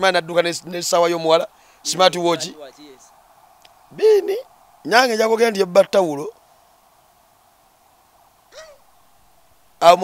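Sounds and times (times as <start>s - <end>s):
man talking: 0.0s - 3.1s, 3.9s - 6.4s, 9.8s - 10.0s
faint steady background noise: 0.0s - 10.0s.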